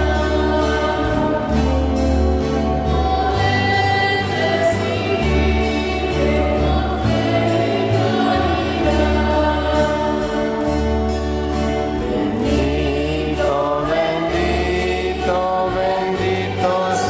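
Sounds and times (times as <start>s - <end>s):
choir singing a slow hymn: 0.0s - 2.0s, 2.6s - 11.1s, 11.8s - 17.0s
instrumental accompaniment: 0.0s - 17.0s.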